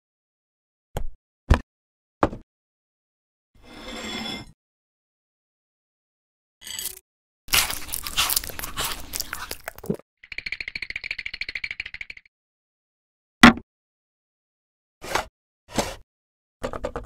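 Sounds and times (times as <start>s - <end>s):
crisp crunching bites: 7.5s - 10.0s
fast pulsing rattle: 10.2s - 12.3s.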